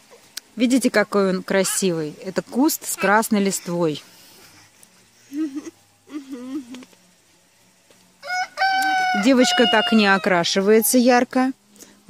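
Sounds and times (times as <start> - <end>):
rooster crowing: 8.2 - 10.8.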